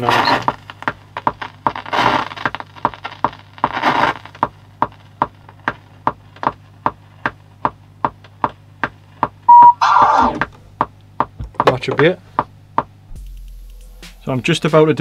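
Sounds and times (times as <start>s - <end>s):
low steady hum: 0.0s - 15.0s
vinyl record crackles and pops: 0.0s - 15.0s
short loud steady tone: 9.5s - 10.3s.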